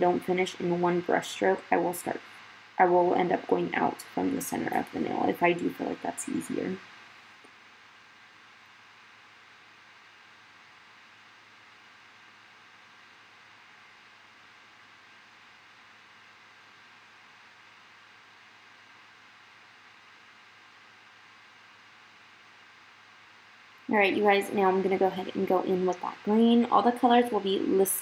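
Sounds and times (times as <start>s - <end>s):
faint steady hiss: 0.0s - 28.0s.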